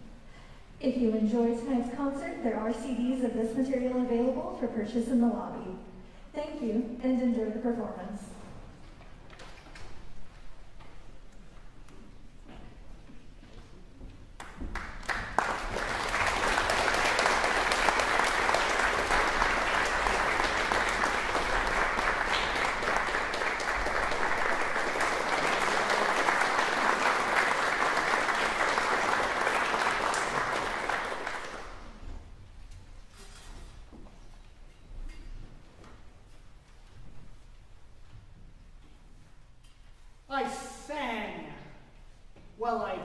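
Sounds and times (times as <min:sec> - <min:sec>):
audience applauding: 0:14.4 - 0:32.0.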